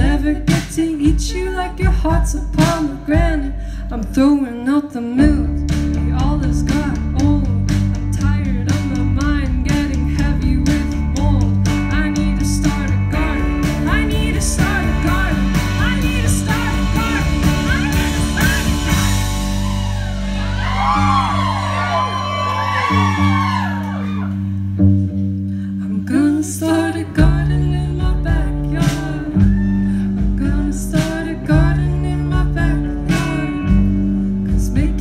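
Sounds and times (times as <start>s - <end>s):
electric guitar strummed: 12.7s - 25.2s.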